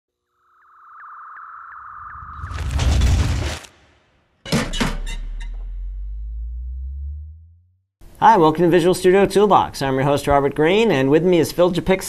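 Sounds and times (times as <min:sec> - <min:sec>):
short rising electronic chirps: 0:00.3 - 0:02.7.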